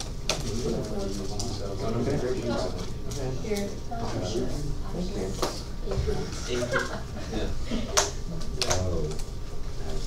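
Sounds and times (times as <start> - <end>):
indistinct chatter of voices: 0.4 - 9.2.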